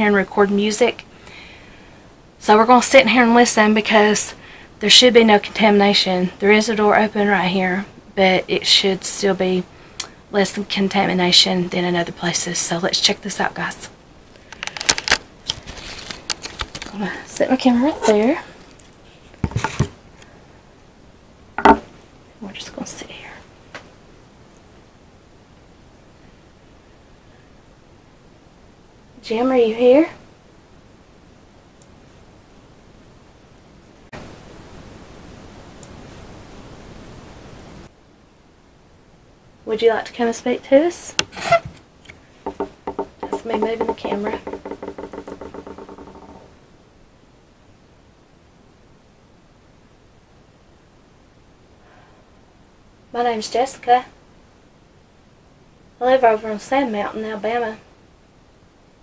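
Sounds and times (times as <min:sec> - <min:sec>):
faint room hiss: 0:00.0 - 0:59.0
short knock: 0:21.6 - 0:21.9.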